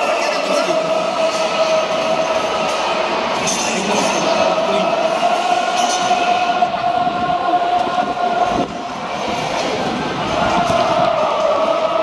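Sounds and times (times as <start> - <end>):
stadium ambience: 0.0 - 12.0.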